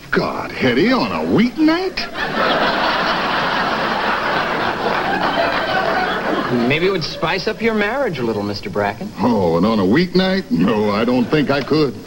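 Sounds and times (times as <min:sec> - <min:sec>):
studio audience laughing: 0:00.9 - 0:07.6, 0:11.0 - 0:11.9.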